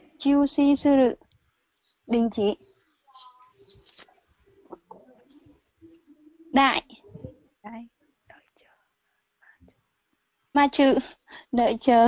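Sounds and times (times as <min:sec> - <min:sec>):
faint quiet voice: 0:03.9 - 0:08.8.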